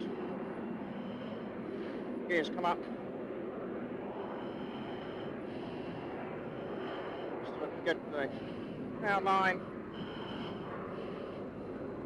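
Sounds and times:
faint high whine: 0.0s - 12.0s
jet engine rushing noise: 3.7s - 12.0s.

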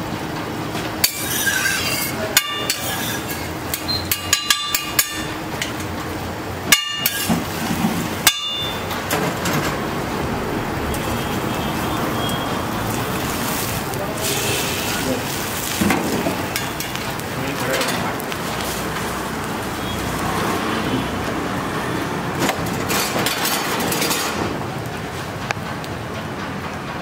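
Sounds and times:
stall noise: 0.0s - 27.0s
metal spatula clinking on griddle: 1.0s - 5.9s, 6.7s - 7.3s, 8.2s - 8.9s
egg frying hiss: 10.4s - 23.8s.

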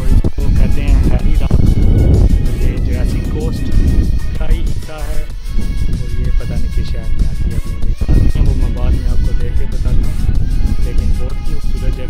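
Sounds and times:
background music: 0.0s - 12.0s
man talking: 0.0s - 12.0s
wind buffeting microphone: 0.0s - 12.0s.

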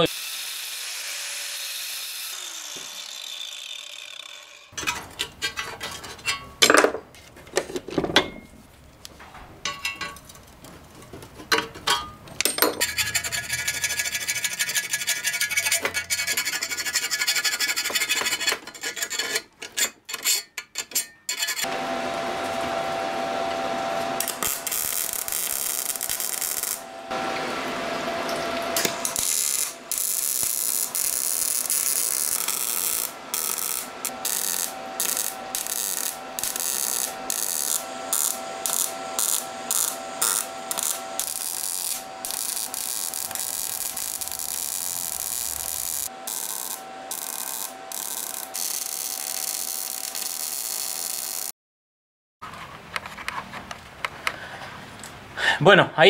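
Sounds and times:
metal parts clinking and rattling: 11.4s - 13.2s
arc welding sizzling: 23.8s - 27.7s, 28.3s - 51.5s.

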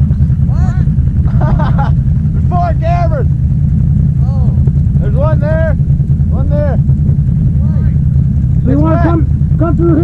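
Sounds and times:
atv engine idling: 0.0s - 10.0s.

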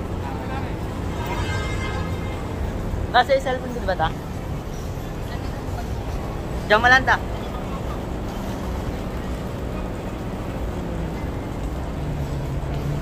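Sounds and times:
concourse rumble: 0.0s - 13.0s.

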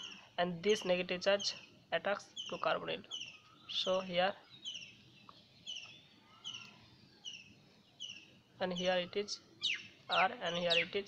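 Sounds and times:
small bird chirping faintly: 0.0s - 11.0s.

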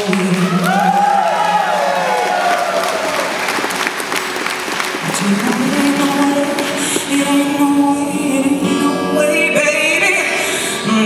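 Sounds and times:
singer's vocals: 0.0s - 2.8s, 5.0s - 11.0s
audience applauding: 0.0s - 7.1s.

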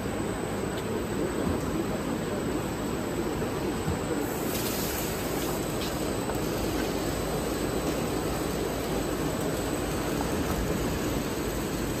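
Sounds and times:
pipe extrusion machine running: 3.4s - 12.0s.

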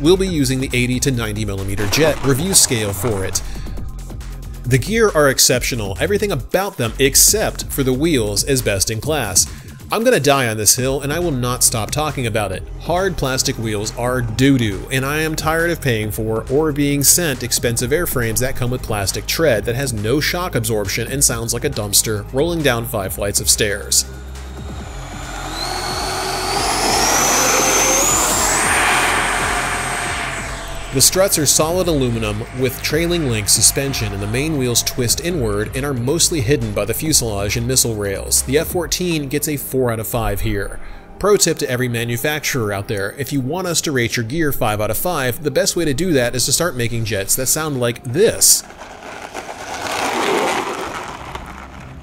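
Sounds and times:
electric ducted fans whining: 0.0s - 3.8s, 22.4s - 38.3s, 47.6s - 52.0s
rush of air: 24.0s - 35.1s, 48.6s - 51.8s
plastic wheels rolling on concrete: 48.2s - 52.0s.

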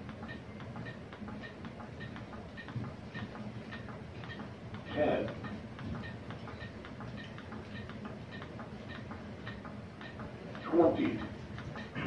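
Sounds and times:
training manikin clicking: 0.0s - 12.0s.

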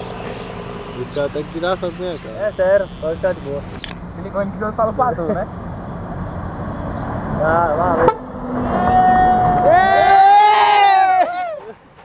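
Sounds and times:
truck diesel engine rumble: 0.0s - 12.0s
truck air horn: 2.4s - 3.4s, 8.0s - 9.4s.

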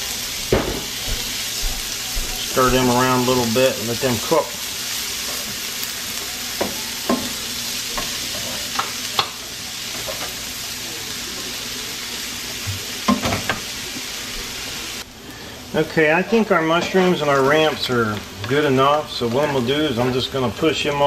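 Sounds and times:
mushrooms sizzling in oil: 0.0s - 21.0s.

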